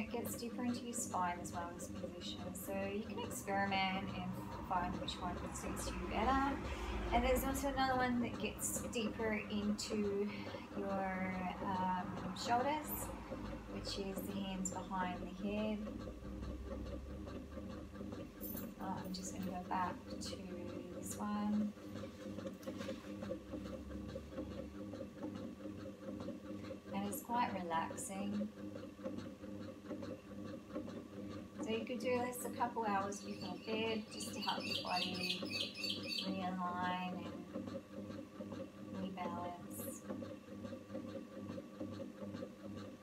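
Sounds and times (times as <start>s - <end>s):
electric motor hum: 0.0s - 43.0s.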